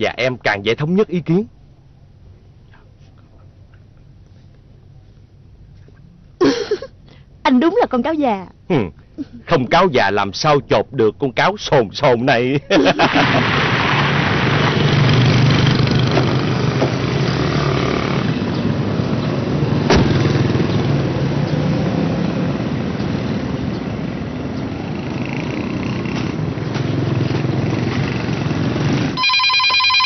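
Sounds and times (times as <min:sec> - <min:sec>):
road noise: 0:00.0 - 0:30.0
motorbikes and cars passing: 0:12.9 - 0:29.2
desk telephone ringing: 0:29.2 - 0:30.0.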